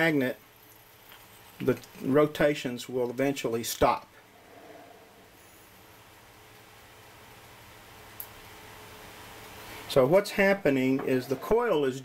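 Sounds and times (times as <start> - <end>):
low hum: 4.2 - 6.6.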